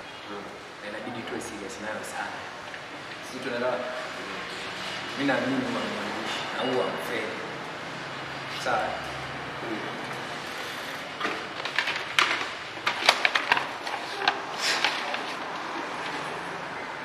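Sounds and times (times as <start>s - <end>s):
paper rustling: 10.5s - 16.3s.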